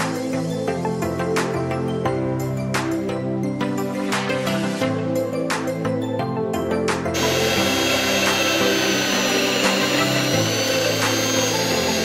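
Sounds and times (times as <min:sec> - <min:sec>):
background music: 0:00.0 - 0:12.0
electric rotary tool whining: 0:07.1 - 0:12.0.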